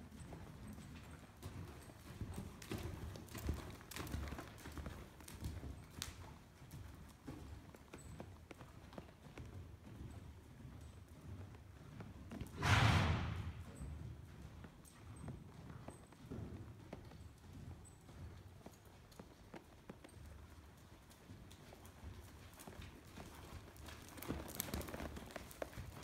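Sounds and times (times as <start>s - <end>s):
horse hoofbeats on dirt: 0.0s - 26.0s.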